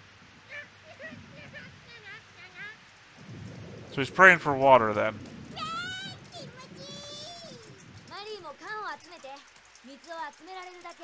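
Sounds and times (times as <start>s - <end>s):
low thunder rumble: 0.0s - 9.0s
cartoon rain falling: 0.0s - 11.0s.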